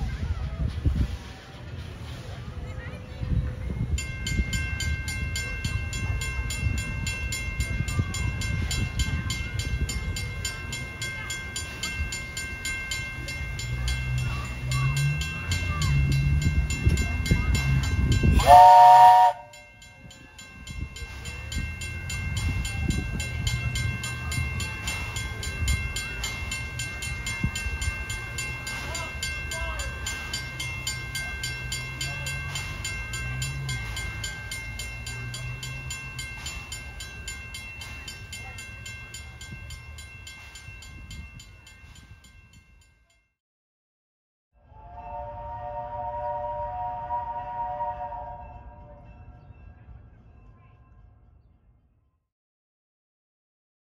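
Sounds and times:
steam train rumbling: 0.0 - 42.8, 44.6 - 51.1
steam whistle blast: 18.4 - 19.5, 44.7 - 49.0.

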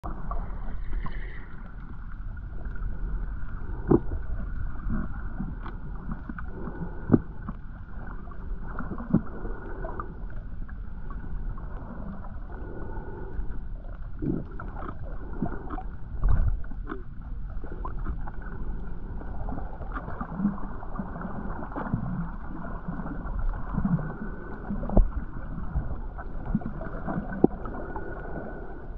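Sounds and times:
muffled underwater rumble: 0.0 - 28.9
faint underwater clicks: 0.1 - 28.9.

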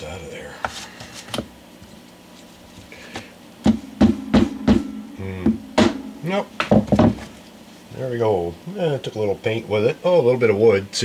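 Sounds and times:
hammer strike with low ringing: 3.6 - 7.5.

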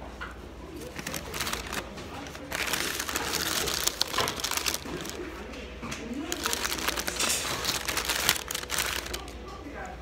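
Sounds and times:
paper wrapper crinkling: 0.8 - 5.4, 6.2 - 9.5.

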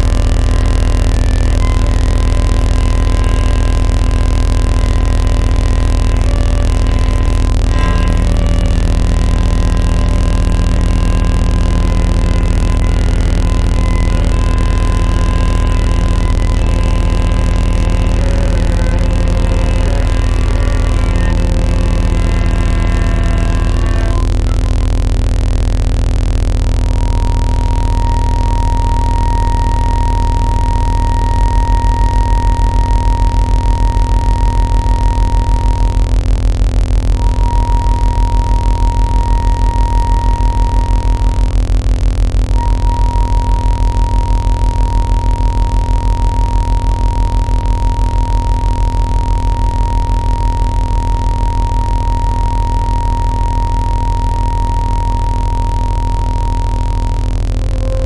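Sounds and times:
clarinet holding high note: 0.0 - 25.8, 26.8 - 36.2, 37.2 - 41.6, 42.6 - 58.0
deep pulsing sine tone: 0.0 - 58.0
electronic low hum and noise: 0.0 - 58.0.

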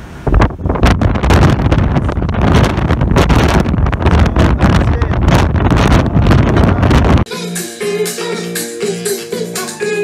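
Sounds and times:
gusty wind on microphone: 0.0 - 7.3.

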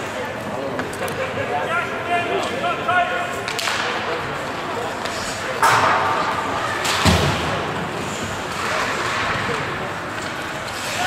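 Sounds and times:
hum of voices in arena: 0.0 - 11.0
hockey sticks and puck clacking: 3.3 - 11.0.

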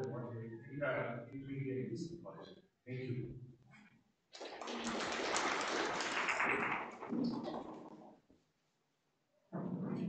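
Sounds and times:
audience applauding: 4.4 - 7.8.

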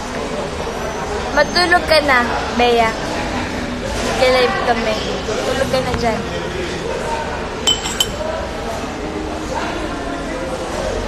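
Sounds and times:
murmur of voices: 0.0 - 11.0
glassware clinking: 7.6 - 8.3.

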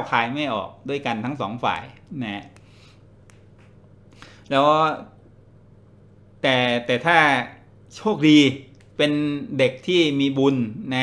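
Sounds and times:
man speaking: 0.0 - 2.6, 4.5 - 5.2, 6.4 - 11.0.

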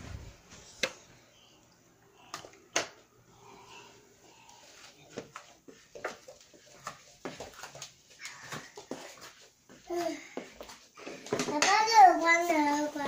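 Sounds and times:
toddler babbling: 9.9 - 10.4.

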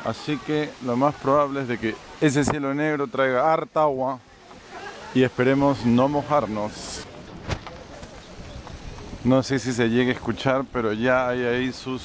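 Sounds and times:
outdoor ambient noise: 0.0 - 12.0.

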